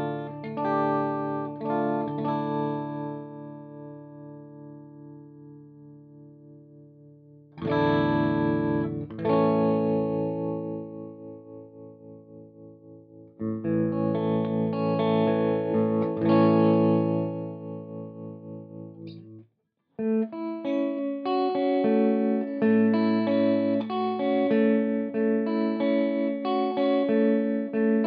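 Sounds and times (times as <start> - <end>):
electric guitar tremolo chords: 0.0 - 19.4, 20.0 - 28.0.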